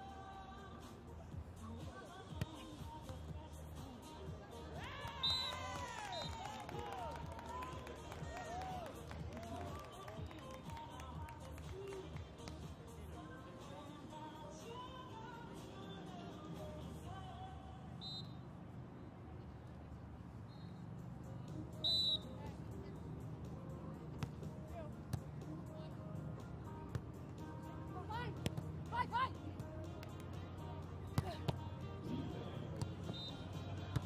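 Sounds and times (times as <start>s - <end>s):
murmur of venue noise: 0.0s - 15.4s
background music: 0.0s - 17.8s, 21.0s - 34.0s
referee's whistle blast: 5.1s - 6.4s, 21.8s - 22.3s, 33.0s - 33.4s.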